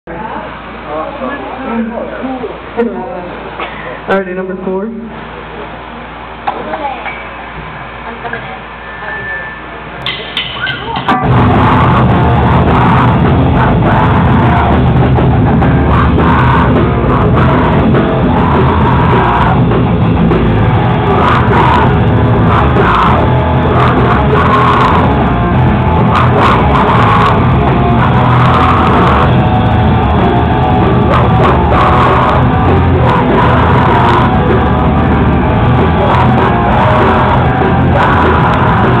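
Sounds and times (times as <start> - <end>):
bar chatter and murmur: 0.1 - 39.0
live rock band playing: 10.8 - 39.0.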